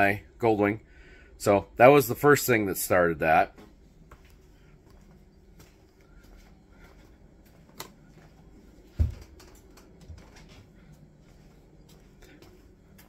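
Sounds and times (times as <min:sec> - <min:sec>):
clicking and rustling handling noises: 0:09.0 - 0:10.8.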